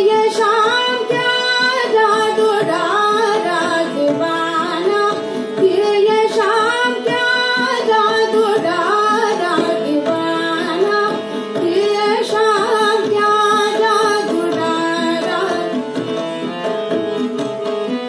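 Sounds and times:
woman singing devotional song: 0:00.0 - 0:16.2
harmonium: 0:00.0 - 0:18.0
tabla: 0:00.0 - 0:18.0.

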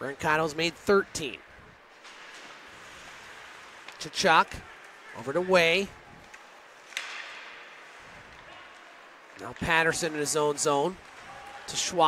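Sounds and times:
hiss of crowd and rink noise: 0:00.0 - 0:12.0
sharp crack: 0:06.3 - 0:07.8.

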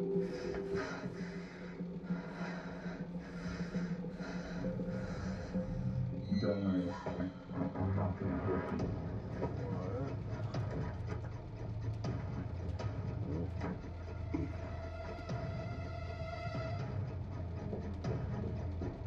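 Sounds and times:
background music: 0:00.0 - 0:19.0
low steady drone: 0:00.0 - 0:19.0.

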